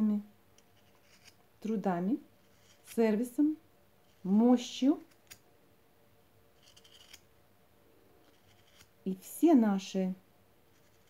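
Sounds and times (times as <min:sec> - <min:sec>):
knife blade shaving wood: 0:06.6 - 0:07.2, 0:08.2 - 0:08.9.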